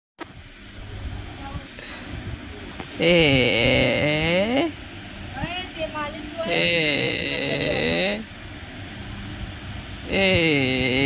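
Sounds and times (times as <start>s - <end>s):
steady low rumble: 0.2s - 11.0s.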